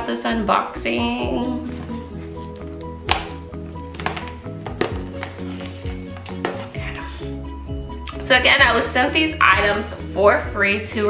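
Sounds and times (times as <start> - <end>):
held bass: 0.8 - 9.8
sharp percussive hit: 3.0 - 5.0.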